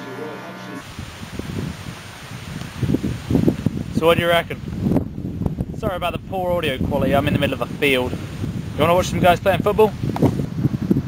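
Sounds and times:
wind buffeting microphone: 0.8 - 11.0.

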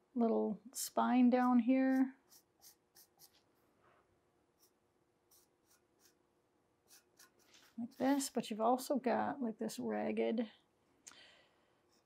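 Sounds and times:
felt-tip marker scratching on steel: 1.4 - 3.5, 4.6 - 6.2, 6.8 - 8.4.

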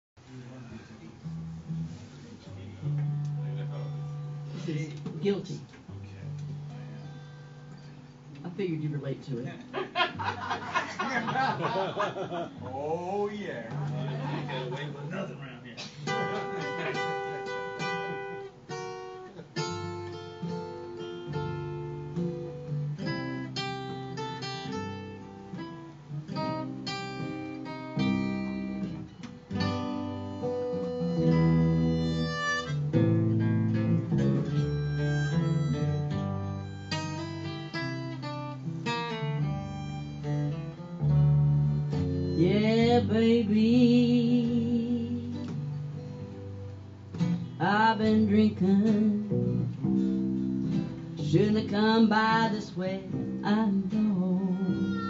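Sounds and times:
acoustic guitars: 0.2 - 55.0
upright bass: 8.2 - 18.1, 28.0 - 51.9
harmonica playing: 30.3 - 33.1, 34.3 - 42.7, 54.5 - 55.0.

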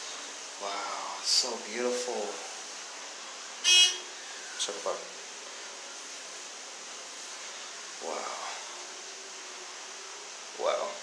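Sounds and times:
store background hiss: 0.0 - 11.0.

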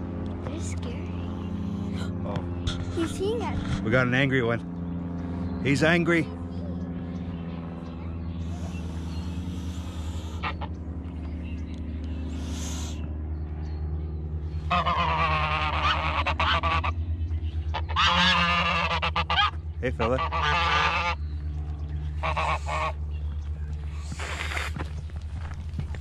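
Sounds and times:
geese honking: 8.4 - 10.8, 14.6 - 21.3, 22.0 - 23.1
geese hissing: 8.4 - 11.1, 12.2 - 13.2, 14.6 - 17.0, 17.7 - 21.2, 22.1 - 23.1, 23.9 - 24.8.

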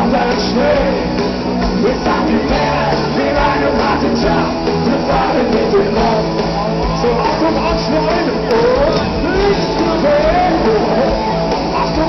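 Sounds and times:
electric guitars: 0.0 - 12.0
live rock band playing: 0.0 - 12.0
man singing: 0.0 - 12.0.

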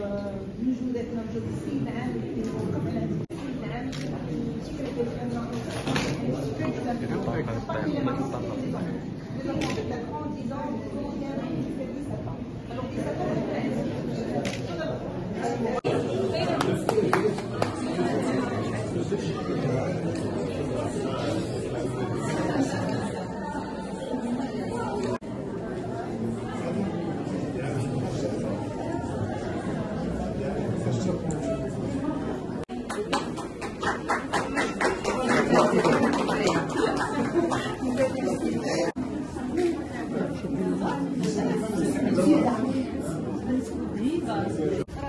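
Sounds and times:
indistinct chatter of many people: 0.0 - 45.0.

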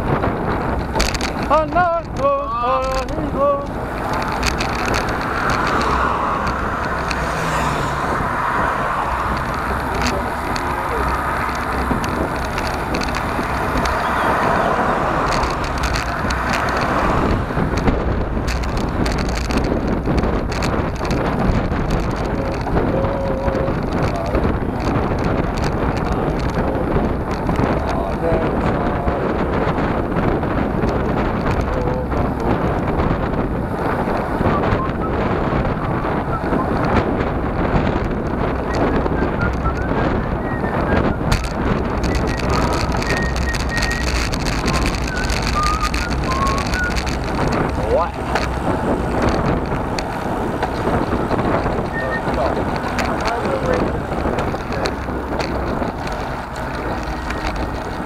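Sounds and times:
bike rattling: 0.0 - 58.0
tyre and road noise: 0.0 - 58.0
wind rushing over microphone: 0.0 - 58.0.

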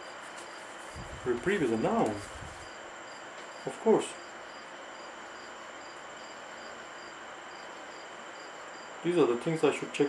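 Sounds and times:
faint insect chirping: 0.0 - 10.0
room hiss: 0.0 - 10.0.

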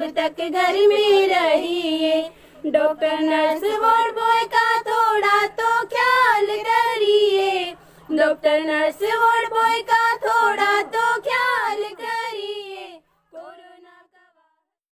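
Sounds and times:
girls singing in unison: 0.0 - 14.5.

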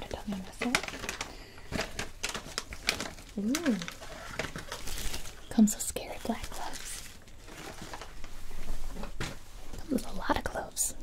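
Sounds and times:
person whispering: 0.0 - 0.8, 5.6 - 7.0.

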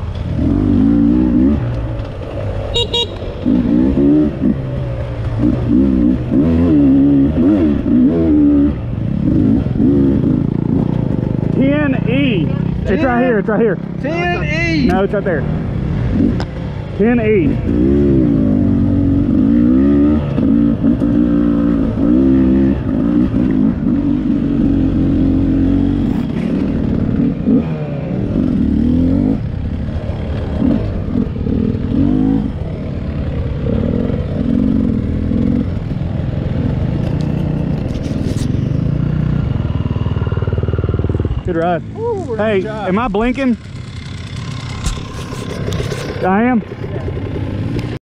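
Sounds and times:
dirt bike engine revving: 0.3 - 1.8, 2.7 - 37.8, 38.6 - 48.0
dirt bike engine idling: 38.8 - 47.5.

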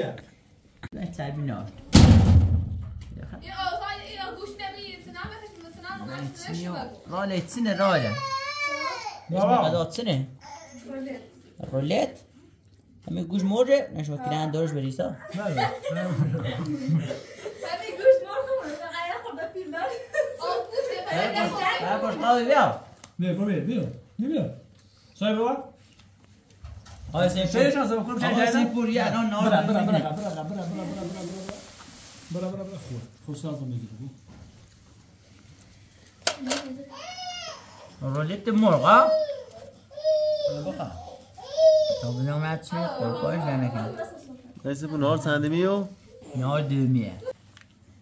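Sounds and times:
men talking: 14.6 - 17.2, 21.6 - 25.8, 27.0 - 31.6, 38.0 - 44.0
men chuckling and laughing: 15.2 - 18.8, 29.4 - 31.5.

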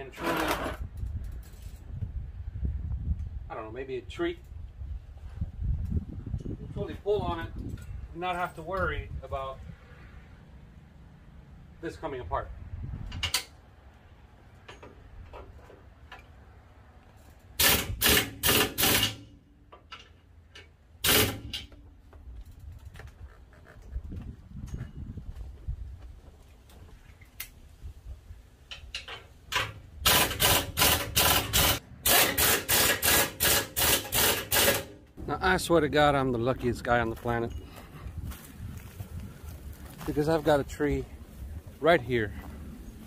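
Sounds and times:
air impact wrench bursts: 17.6 - 19.3, 21.0 - 21.7, 30.0 - 35.0.

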